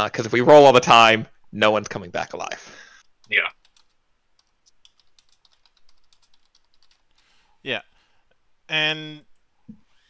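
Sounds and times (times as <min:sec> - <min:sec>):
typing on computer keyboard: 0:03.2 - 0:07.3.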